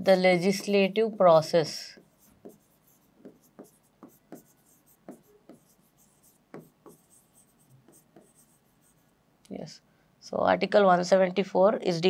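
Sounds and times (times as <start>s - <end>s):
pen scratching and tapping: 0.3s - 9.0s.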